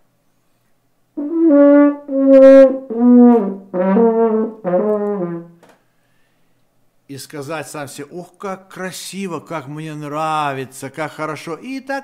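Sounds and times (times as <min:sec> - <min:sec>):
french horn playing slow notes: 0:01.2 - 0:05.6.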